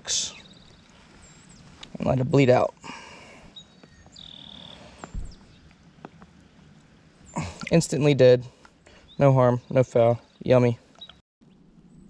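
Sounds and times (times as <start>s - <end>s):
creek water hiss: 2.7s - 9.2s
bird whistling and chirping: 3.5s - 5.6s
soft low thump: 5.1s - 5.4s.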